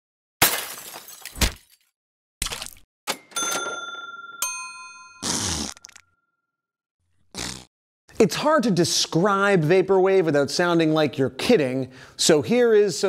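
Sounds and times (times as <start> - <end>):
ringing tone: 3.3 - 5.3.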